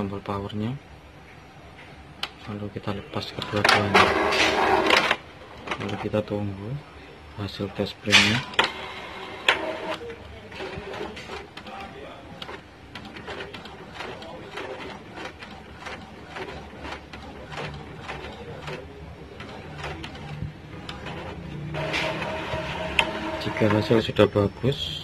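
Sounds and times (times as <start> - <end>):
low printer hum: 0.9 - 25.0
printer clicking and clattering: 3.4 - 6.1, 8.1 - 24.0.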